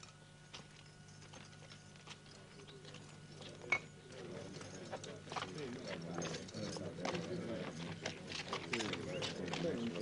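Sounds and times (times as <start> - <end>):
murmur of voices: 2.4 - 10.0
footsteps on hard ground: 4.6 - 10.0.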